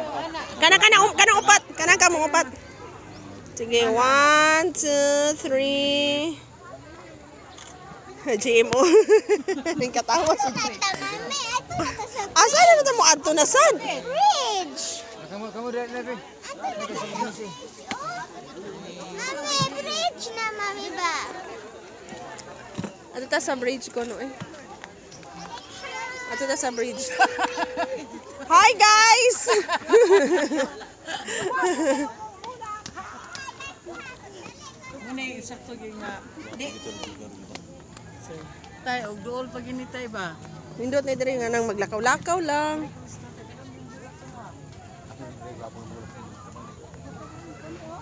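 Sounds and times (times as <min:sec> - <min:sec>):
people talking and calling out: 0:00.0 - 0:48.0.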